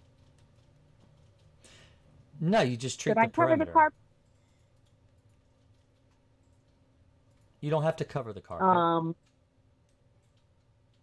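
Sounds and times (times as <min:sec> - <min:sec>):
person saying um: 0:03.1 - 0:03.9.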